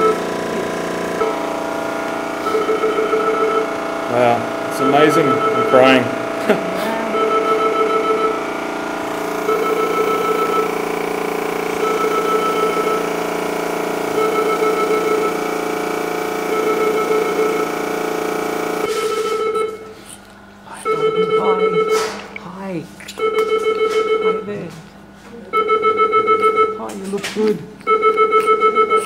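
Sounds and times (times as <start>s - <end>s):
steady multi-tone hum: 0.0s - 29.0s.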